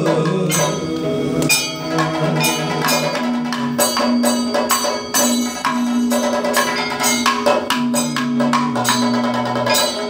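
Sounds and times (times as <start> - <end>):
drums struck in quick pattern: 0.0 - 10.0
gong and cymbals: 0.0 - 10.0.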